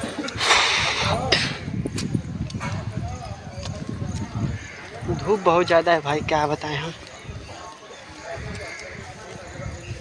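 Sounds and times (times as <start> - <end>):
footsteps on paved path: 0.0 - 10.0
faint background voices: 6.9 - 10.0.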